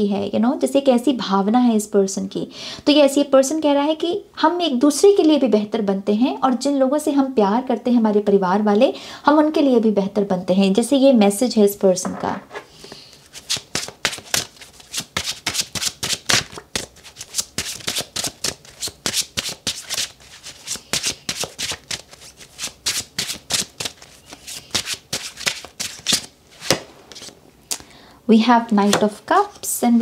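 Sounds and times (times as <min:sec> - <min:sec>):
card deck being shuffled: 0:12.5 - 0:27.4.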